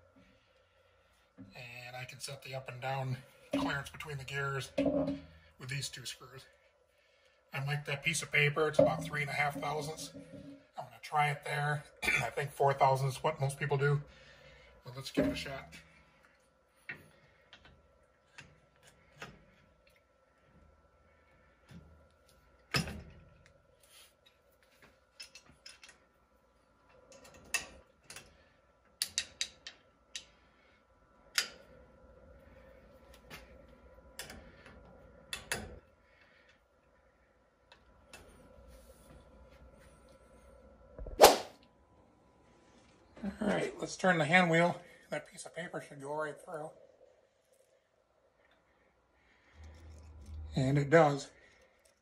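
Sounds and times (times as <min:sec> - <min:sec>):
clicks and knocks of metal housing: 0:04.8 - 0:05.3.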